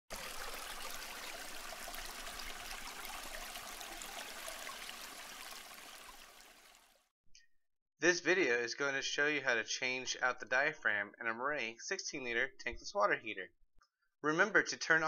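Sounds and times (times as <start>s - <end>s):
running water trickling: 0.1s - 7.1s.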